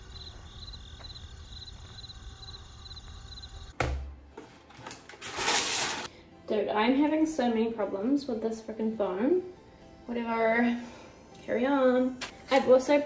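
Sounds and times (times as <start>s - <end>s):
insect-like chirping: 0.0s - 3.7s
knock: 3.8s - 4.1s.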